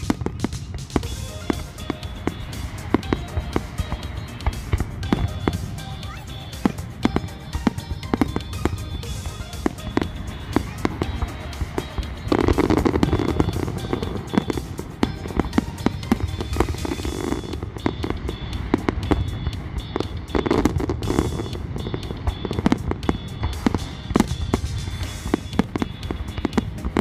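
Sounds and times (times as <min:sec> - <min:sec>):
fireworks bangs and cracks: 0:00.0 - 0:27.0.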